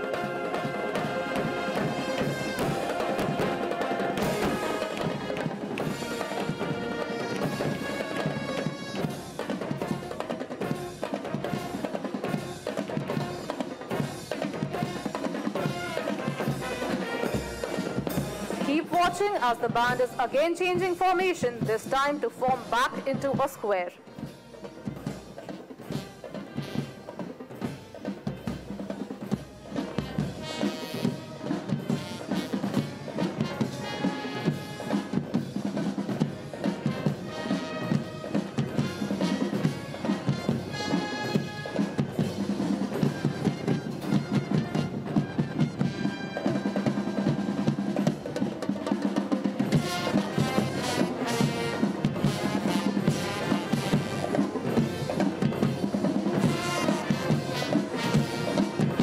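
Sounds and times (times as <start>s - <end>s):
brass playing: 0.0s - 14.0s, 14.6s - 20.0s, 24.1s - 28.7s, 29.5s - 35.5s, 36.1s - 48.1s, 49.6s - 59.0s
bass and snare drums marching: 0.0s - 59.0s.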